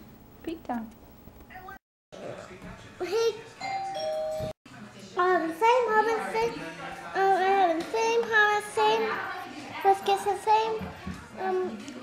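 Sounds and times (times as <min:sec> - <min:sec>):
child's voice: 0:03.0 - 0:03.4, 0:07.2 - 0:12.0.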